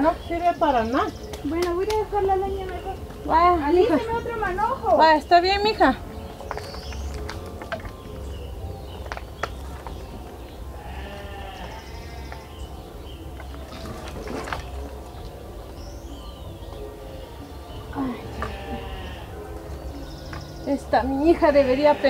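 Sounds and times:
firewood sticks clattering: 0:06.1 - 0:11.2, 0:12.2 - 0:15.4
animal bleating: 0:10.7 - 0:12.5, 0:18.0 - 0:19.4, 0:21.4 - 0:22.0.

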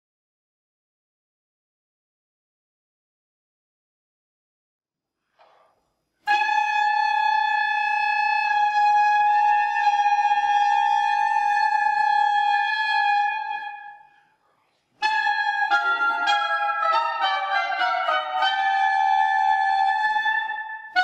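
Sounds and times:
woodwind holding long high note: 0:06.3 - 0:14.1, 0:15.0 - 0:21.0.

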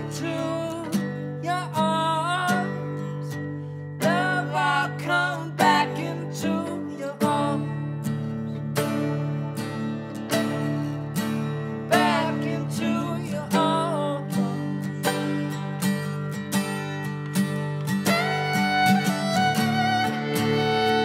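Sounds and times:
acoustic guitar strummed: 0:00.0 - 0:21.0
fiddle playing: 0:17.9 - 0:21.0.

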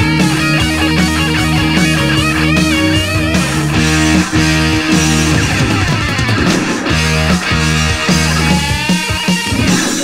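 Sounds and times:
bass guitar: 0:00.0 - 0:10.0
distorted electric guitar riff: 0:00.0 - 0:10.0
drums: 0:00.0 - 0:10.0.

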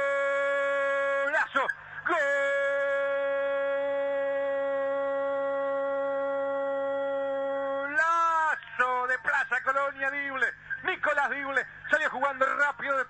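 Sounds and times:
commentator's drawn-out goal cry: 0:00.0 - 0:08.6.

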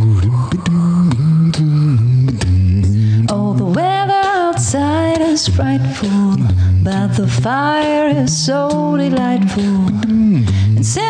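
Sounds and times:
beatboxed clicks: 0:00.0 - 0:11.0
sung bass notes: 0:00.0 - 0:11.0.

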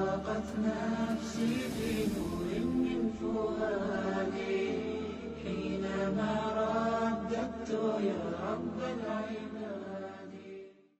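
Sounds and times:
person chanting: 0:00.0 - 0:10.7.

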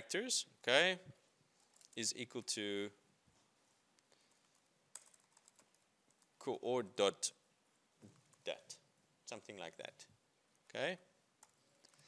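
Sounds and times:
faint keyboard typing: 0:01.5 - 0:02.4, 0:03.9 - 0:06.4, 0:08.0 - 0:08.7, 0:10.5 - 0:12.0.

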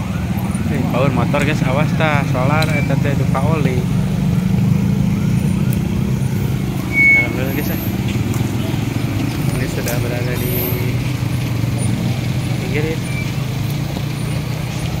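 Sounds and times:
motorcycle and car engines: 0:00.0 - 0:15.0
people's voices: 0:00.0 - 0:15.0.

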